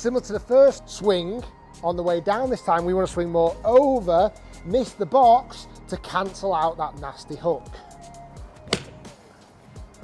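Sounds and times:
background music: 0.0 - 10.0
golf club striking ball: 8.6 - 9.2.

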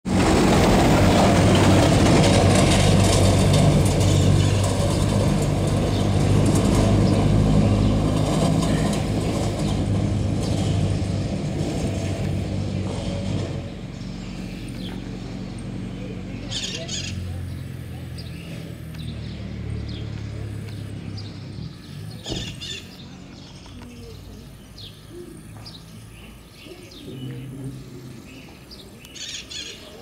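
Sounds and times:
vehicle engine running: 0.0 - 30.0.

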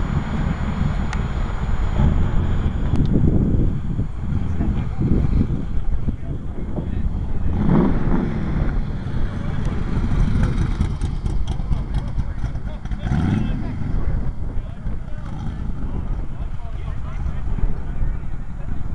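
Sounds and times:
car engine rumbling at low revs: 0.0 - 18.9
people talking: 0.0 - 18.9.

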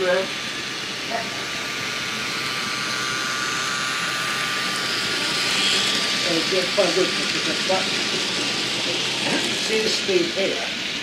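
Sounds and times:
model train motor whirring: 0.0 - 11.0.

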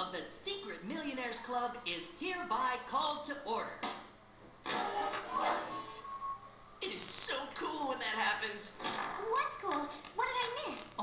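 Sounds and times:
brief steady tone: 5.2 - 6.7.

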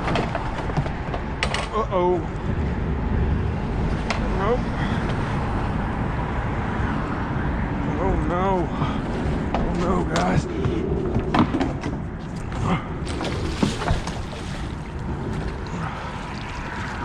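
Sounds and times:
water noise: 0.0 - 17.0
wind: 0.0 - 17.0.

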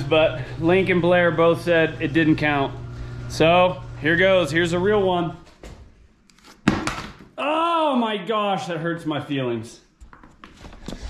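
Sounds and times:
helmet hitting concrete floor: 6.6 - 7.4
man exclaiming: 7.4 - 8.7.

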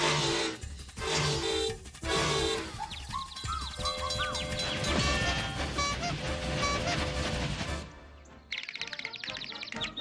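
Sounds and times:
cartoon steam train chugging: 0.0 - 8.0
orchestral cartoon music: 0.0 - 10.0.

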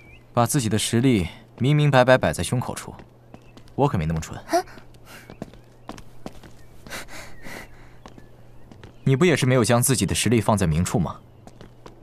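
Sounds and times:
footsteps on stone paving: 0.0 - 12.0.

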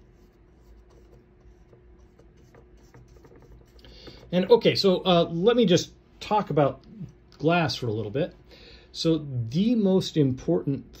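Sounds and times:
paintbrush scratching on canvas: 0.0 - 5.0.

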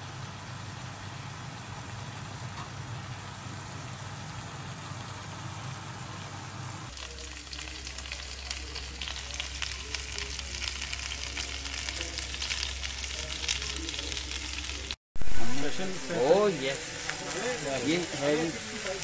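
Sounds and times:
chicken sizzling on a griddle: 0.0 - 19.0.

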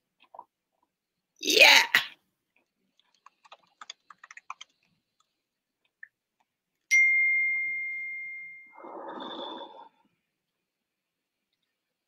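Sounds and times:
clear ding: 6.9 - 8.7.

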